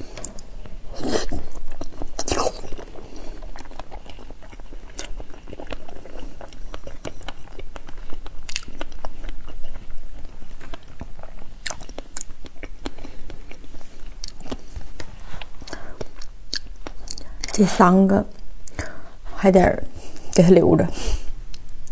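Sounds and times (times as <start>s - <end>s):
person chewing: 0.0s - 17.6s, 18.3s - 19.2s, 21.4s - 21.9s.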